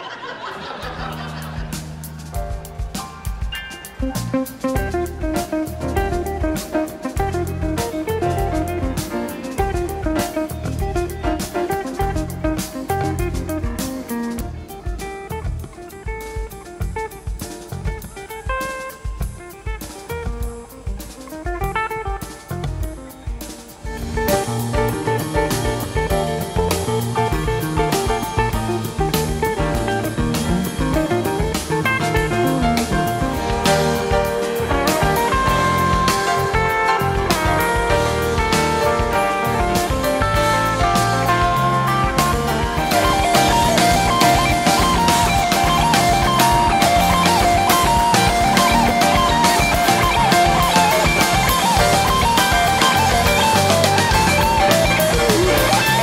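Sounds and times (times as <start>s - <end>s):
band music with guitar and drums: 0.0s - 56.0s.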